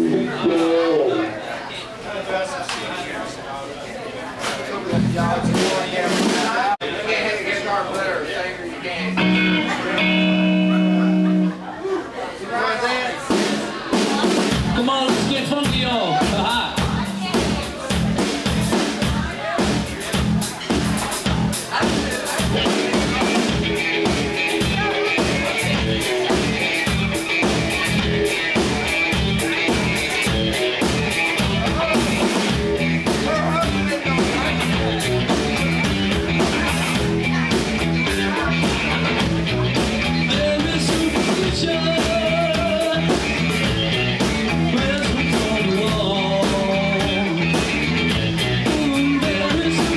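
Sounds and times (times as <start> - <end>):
live rock band playing: 0.0 - 1.5, 4.8 - 6.8, 8.9 - 12.2, 13.1 - 49.9
voices: 0.0 - 49.9
electric guitar sustained notes: 9.2 - 11.8.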